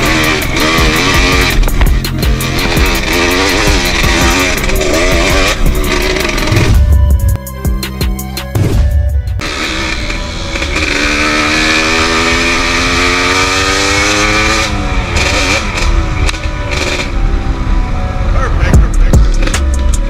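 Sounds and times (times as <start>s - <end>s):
dirt bike engine accelerating: 0.0s - 20.0s
music: 0.0s - 20.0s.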